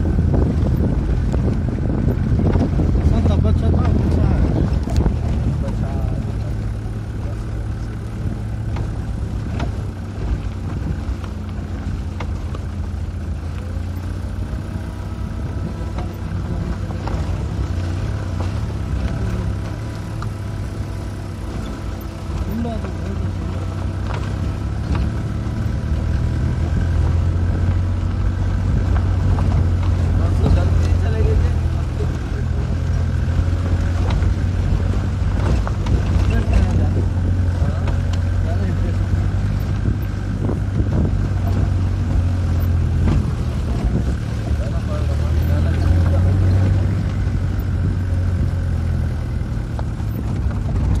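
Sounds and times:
car engine and road drone: 0.0s - 51.0s.

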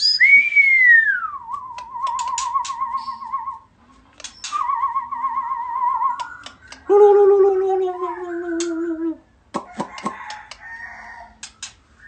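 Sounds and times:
bird singing whistled notes: 0.0s - 3.6s, 4.2s - 6.8s
sharp clicks: 1.5s - 3.0s, 4.1s - 4.7s, 6.1s - 6.9s, 11.4s - 11.8s.

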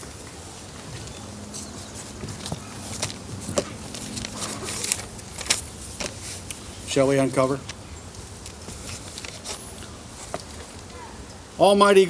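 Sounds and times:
microphone handling clicks and rustles: 0.7s - 11.0s.

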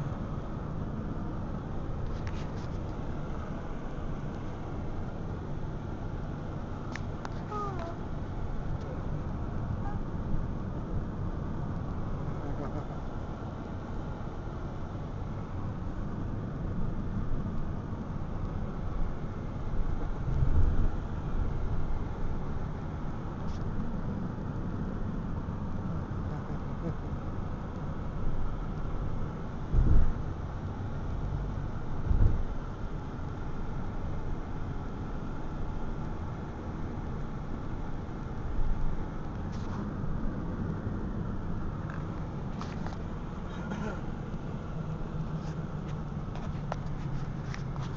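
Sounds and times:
car road and engine rumble: 0.0s - 47.9s.

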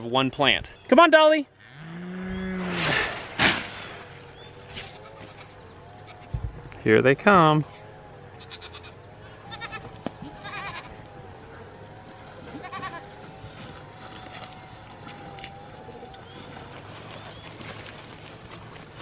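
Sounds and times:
goats bleating: 4.8s - 6.3s, 8.3s - 11.1s, 12.3s - 13.3s.

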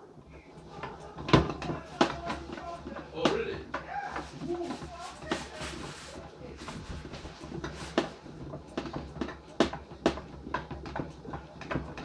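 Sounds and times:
washing machine motor hum: 0.0s - 12.0s.

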